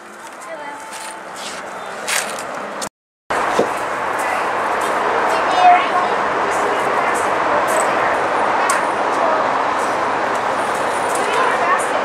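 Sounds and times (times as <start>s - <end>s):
outdoor noise: 0.0s - 12.0s
children's voices: 4.2s - 10.1s, 11.1s - 12.0s.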